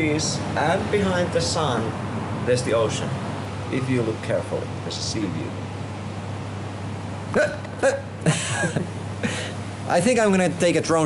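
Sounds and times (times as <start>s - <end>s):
man laughing: 7.4s - 9.6s.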